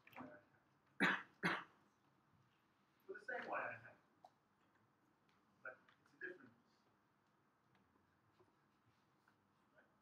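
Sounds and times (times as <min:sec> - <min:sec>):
person coughing: 0:01.0 - 0:01.8.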